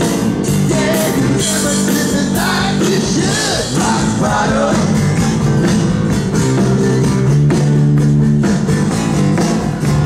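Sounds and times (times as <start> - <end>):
bass guitar: 0.0 - 10.0
drum beat: 0.0 - 10.0
strummed guitars: 0.0 - 10.0.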